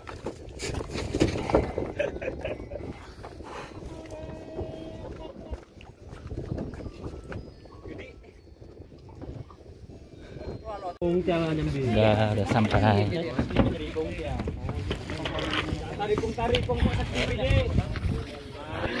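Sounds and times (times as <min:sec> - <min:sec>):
indistinct voices: 0:18.0 - 0:19.0.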